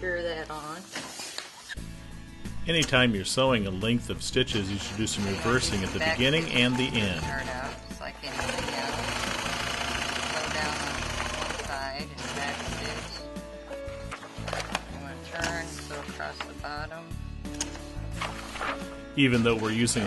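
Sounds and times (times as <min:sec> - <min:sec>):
background music: 0:00.0 - 0:00.8, 0:01.7 - 0:20.0
sewing machine stitching: 0:04.5 - 0:13.2.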